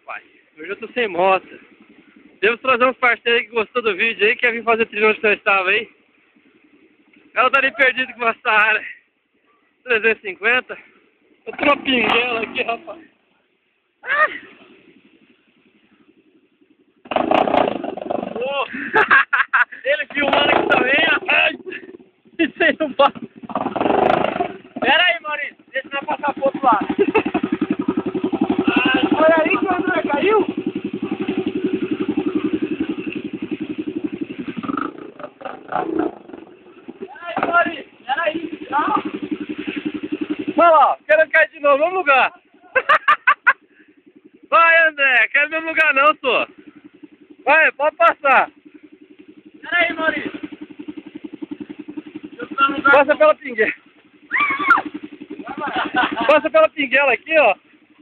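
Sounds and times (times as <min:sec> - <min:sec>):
dirt bike engine revving: 0:00.0 - 0:09.0, 0:09.9 - 0:13.2, 0:13.9 - 0:58.0
man shouting: 0:07.4 - 0:08.4, 0:14.0 - 0:14.4, 0:28.6 - 0:30.5, 0:37.1 - 0:39.1, 0:42.1 - 0:42.8, 0:54.3 - 0:54.9.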